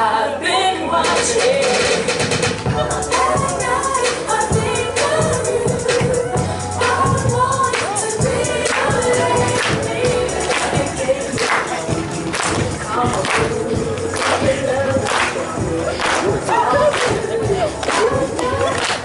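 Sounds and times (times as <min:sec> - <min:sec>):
dance song over loudspeakers: 0:00.0 - 0:19.0
sharp clap on the beat: 0:09.6 - 0:09.8, 0:11.4 - 0:15.4, 0:16.0 - 0:16.3.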